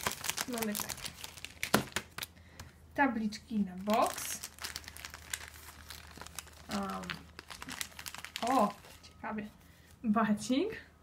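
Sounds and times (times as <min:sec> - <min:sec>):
plastic packaging crinkling: 0:00.0 - 0:02.7, 0:03.6 - 0:09.2.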